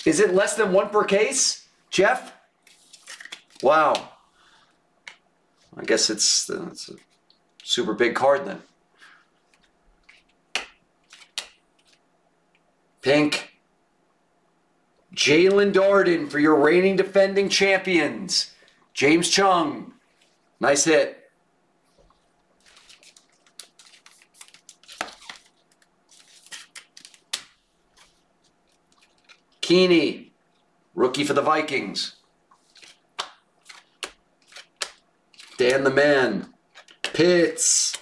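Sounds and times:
trading cards snapping: 9.6s - 12.0s, 22.7s - 27.6s, 32.7s - 35.9s
sharp card snaps: 10.1s - 11.6s.

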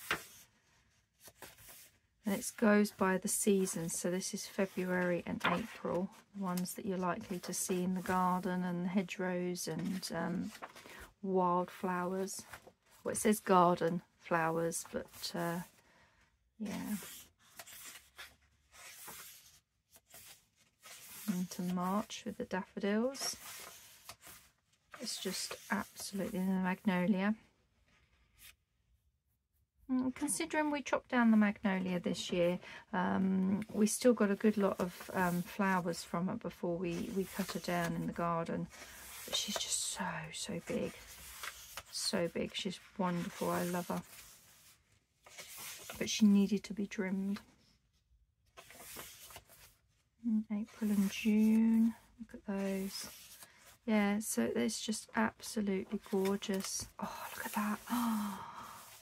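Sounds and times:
book pages turning: 0.0s - 3.0s, 3.6s - 8.5s, 9.8s - 11.1s, 16.7s - 26.8s, 27.8s - 28.6s, 33.5s - 46.2s, 48.5s - 50.0s, 50.6s - 53.9s, 54.7s - 59.0s.

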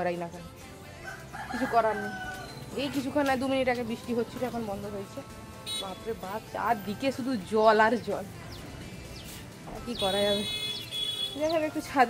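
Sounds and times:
rooster crowing: 1.0s - 2.6s.

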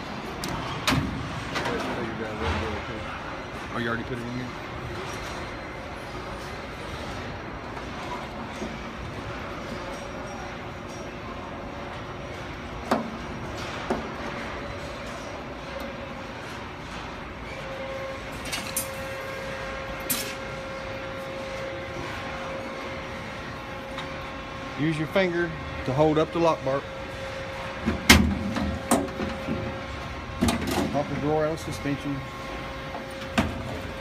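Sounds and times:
background hum and hiss: 0.0s - 34.0s.

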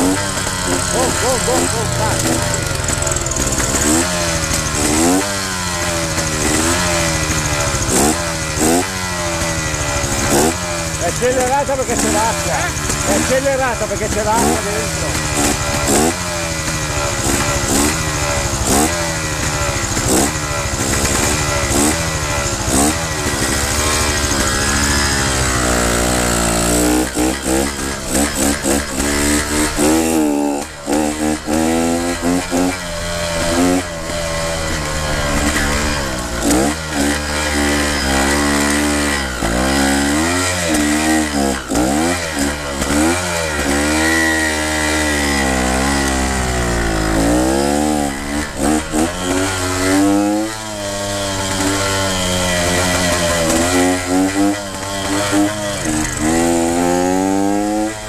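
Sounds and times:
motorcycle engine revving: 0.0s - 58.0s.

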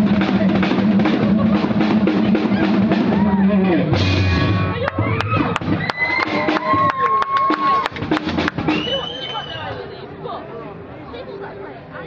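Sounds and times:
live rock band playing: 0.0s - 6.8s.

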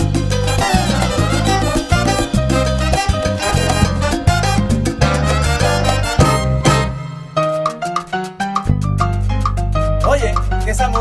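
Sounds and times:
salsa band playing: 0.0s - 11.0s.

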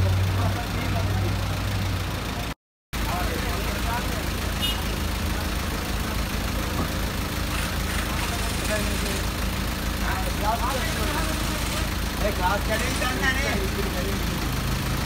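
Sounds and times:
vehicle engine idling: 0.0s - 15.0s.

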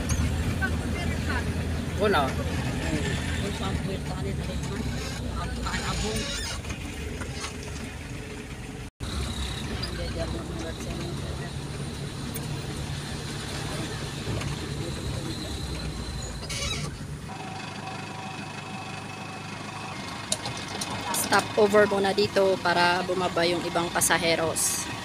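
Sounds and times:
van engine and road rumble: 0.0s - 25.0s.

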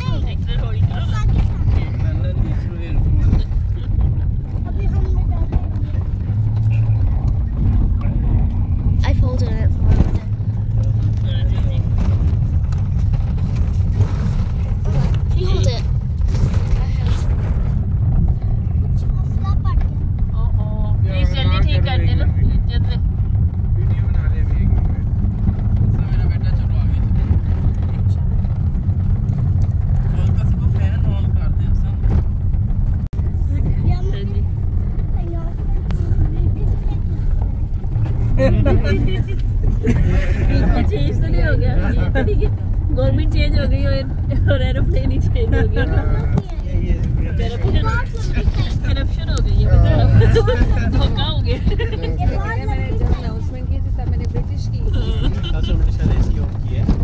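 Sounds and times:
people's voices: 0.0s - 13.3s, 33.1s - 57.0s
vehicle engine and road rumble: 0.0s - 57.0s.

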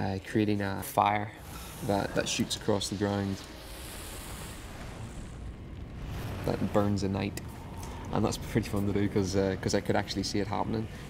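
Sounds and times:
fire rushing: 1.1s - 11.0s
high hiss: 1.4s - 8.4s.

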